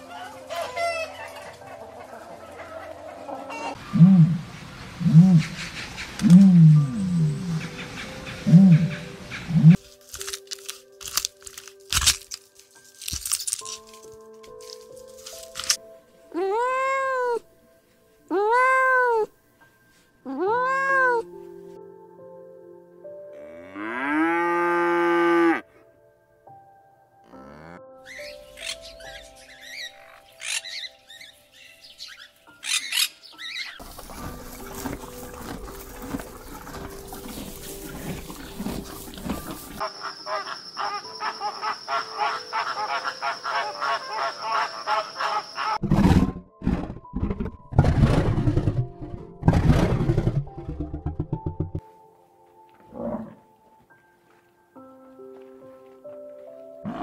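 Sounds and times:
mixed animal sounds: 0.0s - 9.8s, 27.3s - 46.9s
background music: 0.0s - 57.0s
cow mooing: 23.4s - 25.6s, 27.3s - 27.8s.

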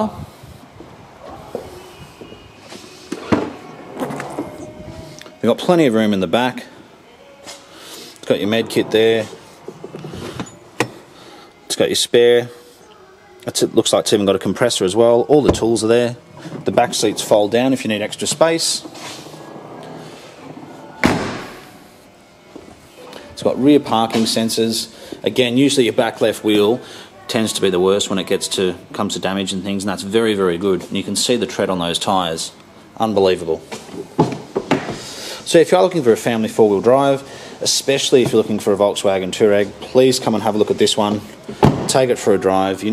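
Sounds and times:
car tailgate slamming: 21.0s - 21.6s.

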